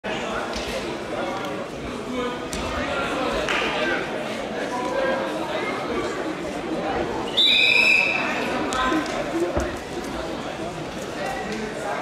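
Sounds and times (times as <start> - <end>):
chatter in large hall: 0.0 - 12.0.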